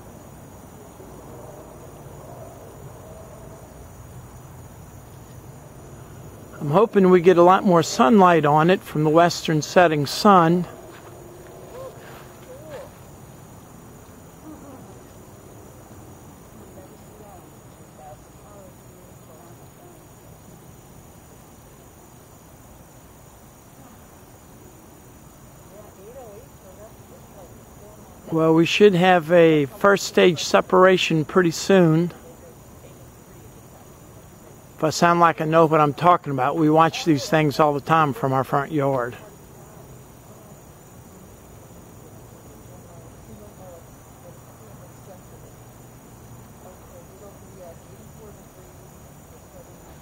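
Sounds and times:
high insect drone: 0.0s - 50.0s
man talking: 6.6s - 10.8s, 28.3s - 32.2s, 34.8s - 39.2s.

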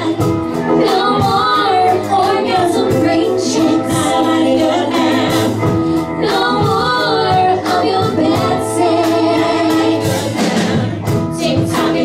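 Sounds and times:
drums: 0.0s - 12.0s
upright bass: 0.0s - 12.0s
voices singing together: 0.0s - 12.0s.

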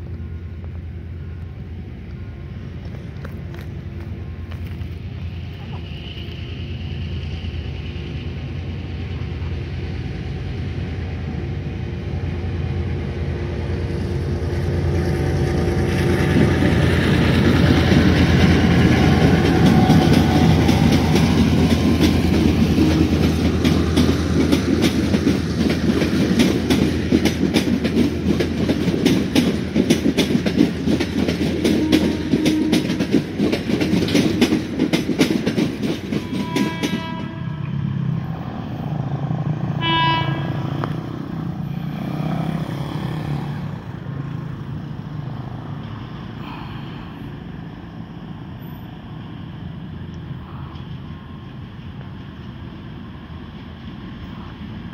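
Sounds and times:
diesel locomotive engine: 0.0s - 54.9s
train wheels clacking on rails: 2.8s - 48.4s
locomotive horn blasts: 31.6s - 33.1s, 33.8s - 34.8s, 36.1s - 38.0s, 39.8s - 40.9s.

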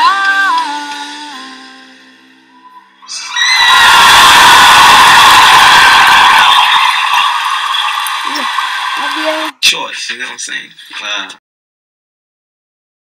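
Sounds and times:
distorted high-pitched shriek: 2.7s - 9.5s.

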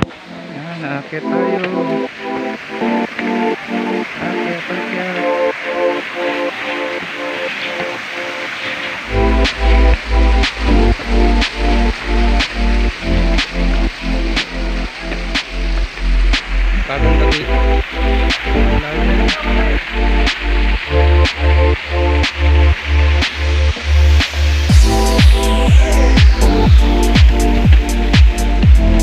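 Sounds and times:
electronic dance music: 0.0s - 29.0s
heavy bass beat: 0.0s - 29.0s.

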